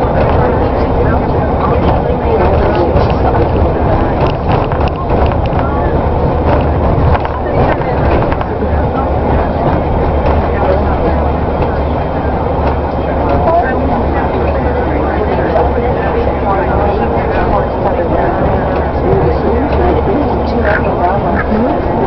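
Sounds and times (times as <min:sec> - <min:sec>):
bus engine and road drone: 0:00.0 - 0:22.0
indistinct passenger voices: 0:00.0 - 0:22.0.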